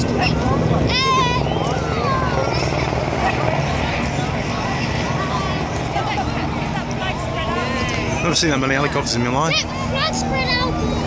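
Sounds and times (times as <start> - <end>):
helicopter rotors droning: 0.0 - 11.0.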